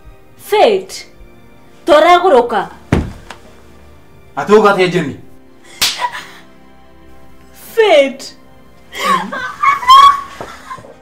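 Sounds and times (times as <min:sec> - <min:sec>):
slap to the face: 0:05.8 - 0:06.1.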